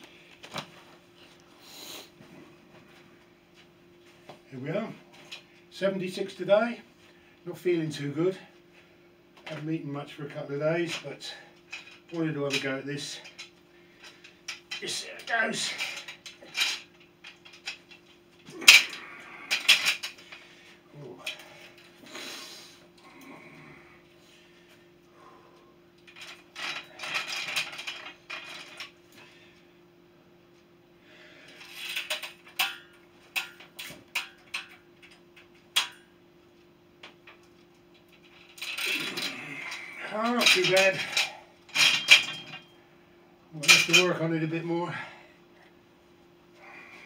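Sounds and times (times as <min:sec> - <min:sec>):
steel springs clinking and rattling: 0:10.7 - 0:22.0, 0:26.0 - 0:29.2, 0:31.5 - 0:36.1, 0:37.0 - 0:42.8, 0:43.6 - 0:44.3.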